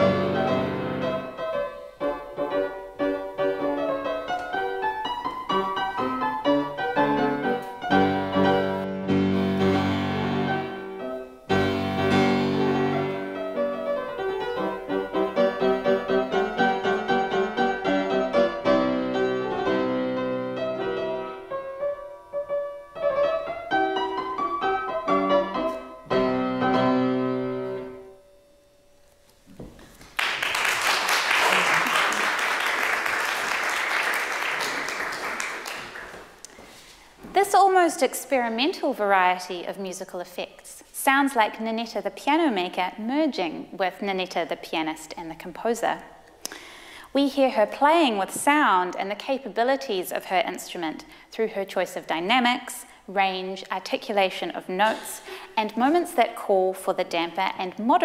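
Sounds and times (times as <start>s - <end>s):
fortepiano playing march chords: 0.0s - 28.6s
audience applause: 30.0s - 36.4s.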